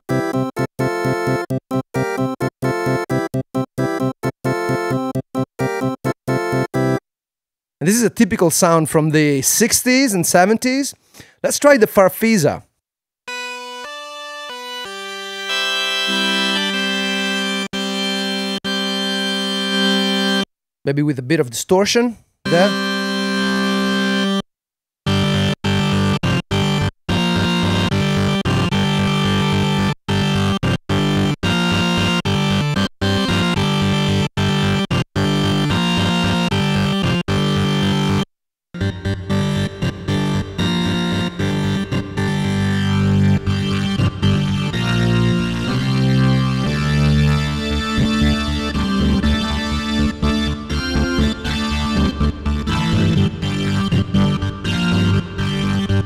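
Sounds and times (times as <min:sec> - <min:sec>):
distorted combo organ chords: 0:13.3 - 0:20.4, 0:22.5 - 0:24.4, 0:25.1 - 0:56.0.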